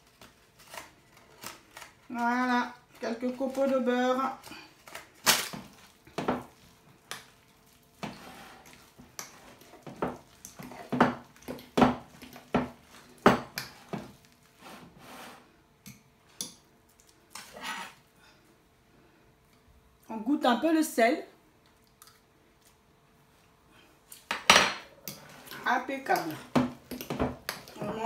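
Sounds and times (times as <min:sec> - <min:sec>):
metal utensil scraping glass bowl: 0:17.4 - 0:18.0.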